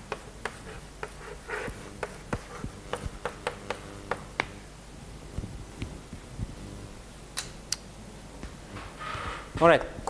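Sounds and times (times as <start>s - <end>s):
chalk tapping on blackboard: 0.0s - 4.6s.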